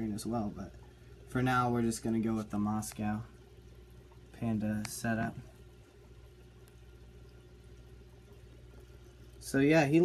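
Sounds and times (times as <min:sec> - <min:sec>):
aquarium filter hum: 0:00.0 - 0:10.0
soft water trickle: 0:00.0 - 0:10.0.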